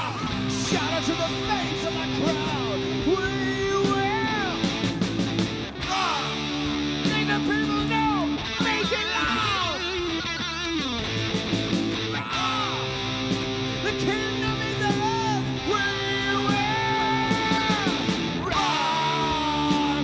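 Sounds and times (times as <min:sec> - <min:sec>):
bass: 0:00.0 - 0:20.0
drums: 0:00.0 - 0:20.0
electric guitar lead: 0:00.0 - 0:20.0.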